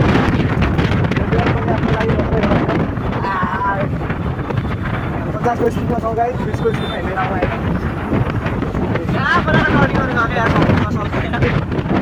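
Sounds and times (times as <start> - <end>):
road noise: 0.0 - 12.0
wind rushing over microphone: 0.0 - 12.0.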